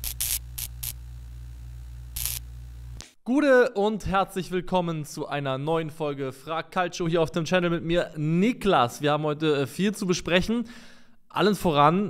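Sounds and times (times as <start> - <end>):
electrical mains hum: 0.0 - 3.0
static crackles: 0.0 - 3.0.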